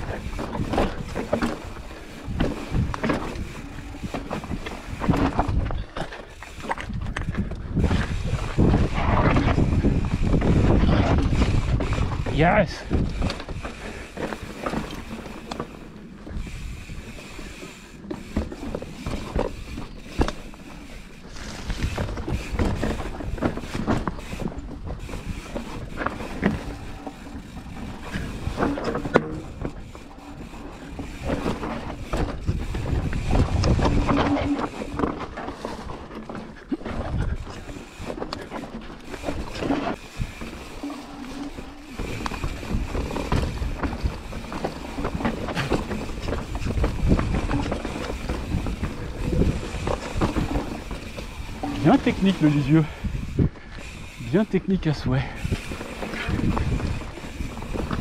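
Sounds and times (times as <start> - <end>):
wind on microphone: 0.0 - 15.2, 21.3 - 35.2, 36.8 - 38.2, 39.2 - 58.0
bike knocks and rattles: 0.0 - 54.5, 55.2 - 58.0
tyres rumbling over dirt and stone: 0.0 - 58.0.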